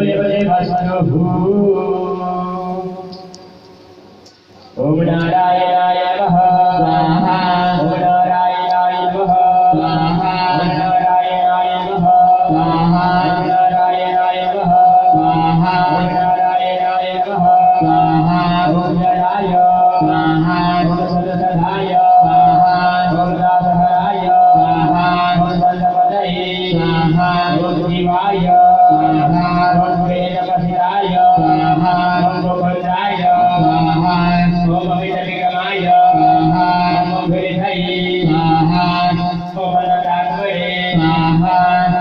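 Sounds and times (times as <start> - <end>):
devotional mantra chanting: 0.0 - 3.7, 4.3 - 42.0.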